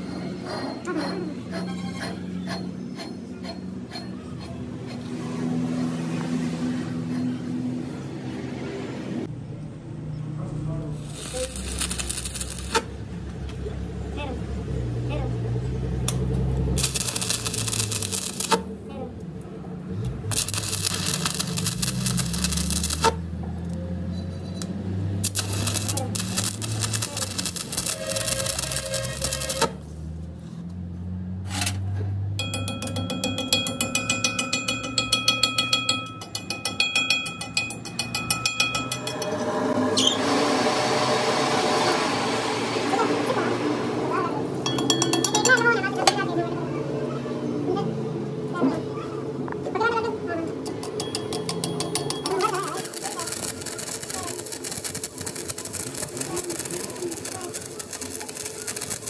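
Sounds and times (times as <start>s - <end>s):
welding arc crackling: 11.0s - 13.1s, 16.1s - 18.8s, 20.1s - 23.4s, 24.6s - 29.9s, 50.6s - 59.0s.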